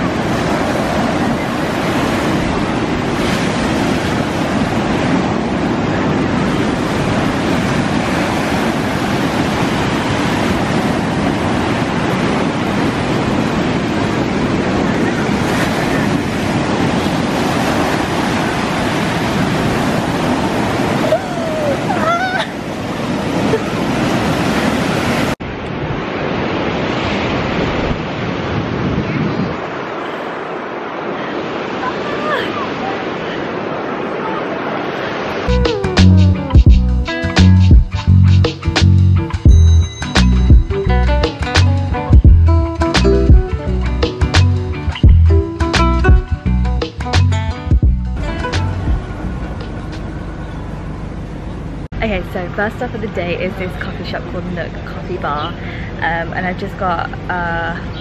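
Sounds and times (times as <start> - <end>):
ocean surf breaking on sand: 0.0 - 35.8.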